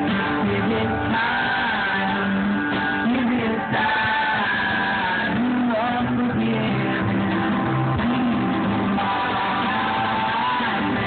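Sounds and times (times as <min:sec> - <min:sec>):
live band with guitars: 0:00.0 - 0:11.0
person singing: 0:00.0 - 0:11.0.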